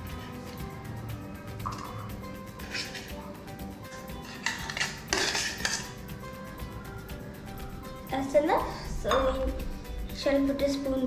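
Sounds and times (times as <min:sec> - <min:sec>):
background music: 0:00.0 - 0:11.0
spoon scraping in metal jar: 0:02.6 - 0:03.2, 0:04.0 - 0:06.0.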